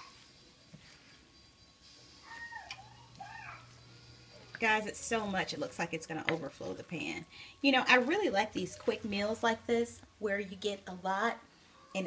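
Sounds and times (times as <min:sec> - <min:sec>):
faint high-pitched vocal calls: 0:02.2 - 0:03.7.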